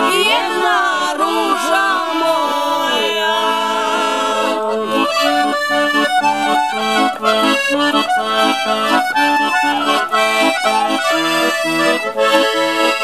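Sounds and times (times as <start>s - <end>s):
piano accordion playing folk tune: 0.0s - 13.0s.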